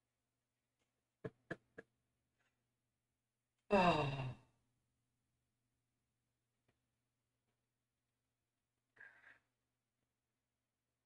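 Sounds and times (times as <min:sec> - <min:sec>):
man sighing: 0:03.7 - 0:04.3.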